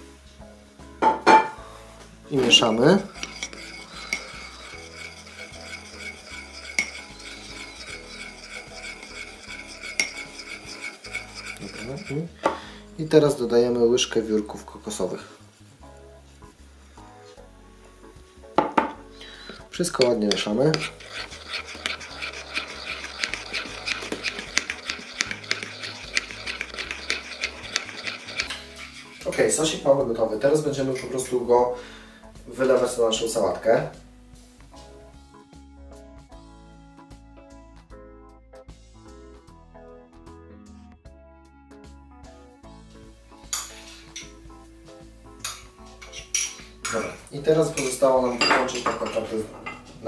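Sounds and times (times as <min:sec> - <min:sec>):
soft background music: 0:00.0 - 0:50.0
metal spoon scraping ceramic bowl: 0:02.4 - 0:12.4, 0:19.8 - 0:29.8, 0:45.4 - 0:50.0.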